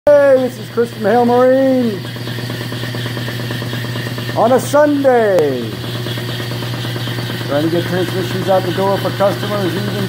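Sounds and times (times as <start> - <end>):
transmission humming and rattling: 0.1 - 10.0.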